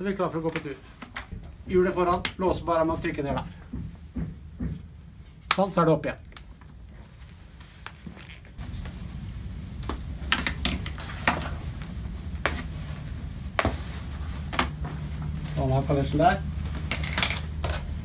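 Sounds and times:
low handling rumble: 1.2 - 4.6, 8.6 - 18.0.

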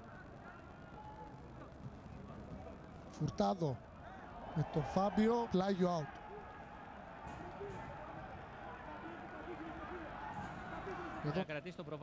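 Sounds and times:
stadium background hiss: 0.0 - 12.0.

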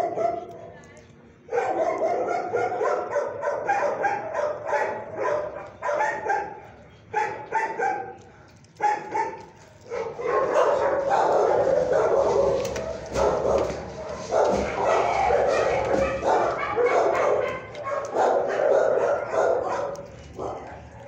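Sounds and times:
dogs barking and yipping: 0.0 - 0.8, 1.5 - 21.0.

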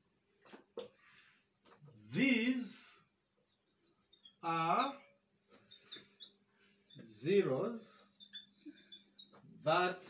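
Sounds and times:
marker writing on whiteboard: 3.4 - 9.5.

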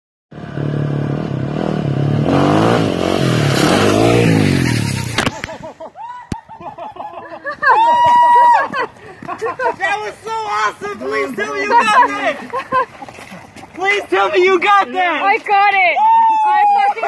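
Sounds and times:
motorcycle engine revving: 0.3 - 5.4
people's voices: 8.0 - 17.0.

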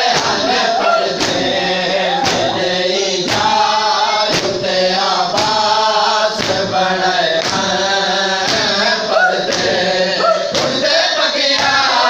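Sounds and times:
chest-beating strikes: 0.0 - 4.7, 9.5 - 11.9
men chanting in unison: 0.0 - 12.0.

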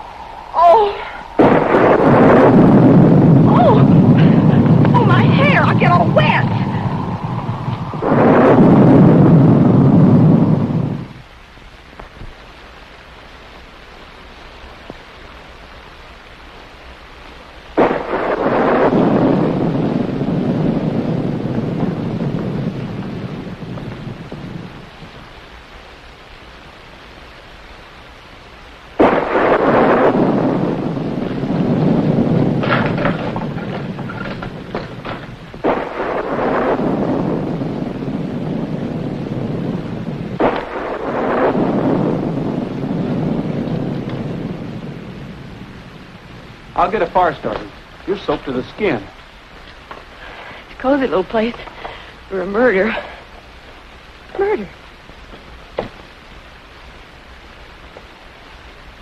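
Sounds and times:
thunderclaps rolling: 0.0 - 13.2, 14.3 - 59.0
rain hissing: 0.0 - 59.0.

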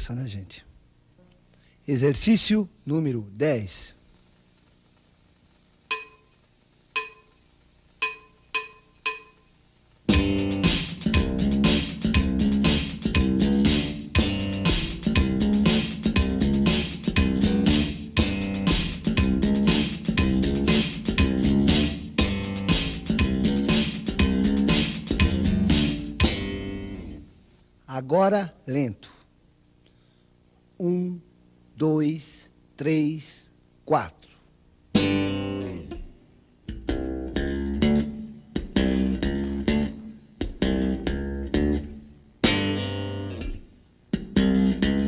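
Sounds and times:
count-in clicks: 5.9 - 6.4, 7.0 - 7.4, 8.0 - 9.5
slap bass playing: 10.1 - 27.3, 35.0 - 36.1, 36.7 - 43.6, 44.2 - 45.0.

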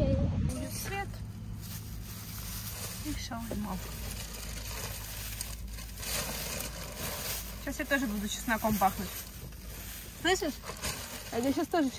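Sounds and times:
low hum inside car: 0.0 - 11.9.

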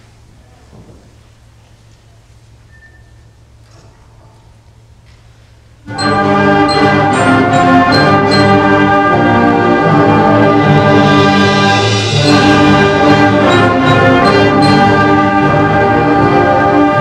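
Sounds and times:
ringing percussion accents: 5.9 - 8.9, 12.0 - 15.3
concert band playing chords: 5.9 - 17.0.

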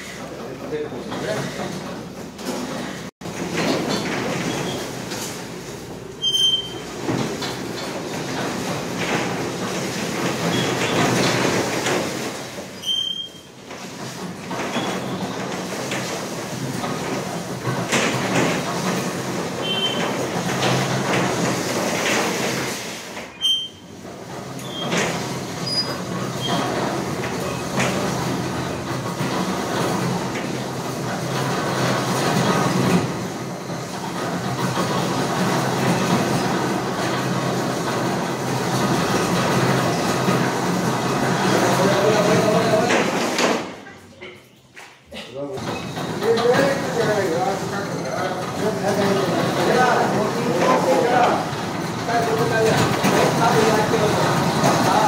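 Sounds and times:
pipe rumbling and scraping: 0.0 - 43.4, 45.6 - 55.0.

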